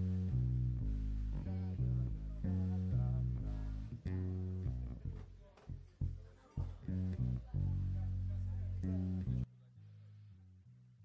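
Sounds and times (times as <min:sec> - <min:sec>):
bass guitar playing low notes: 0:00.0 - 0:11.0
guitar: 0:00.0 - 0:11.0.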